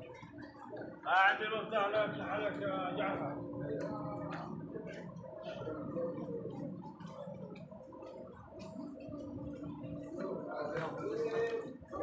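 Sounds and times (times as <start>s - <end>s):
muffled voices: 0.0s - 12.0s.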